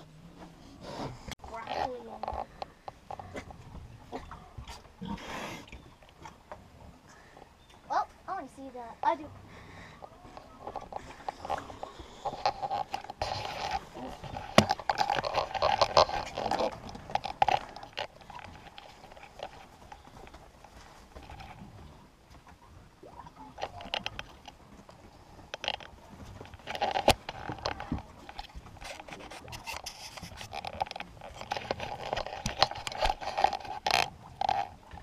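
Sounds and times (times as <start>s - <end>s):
small rustles and clicks: 1.4s - 5.0s, 10.0s - 35.0s.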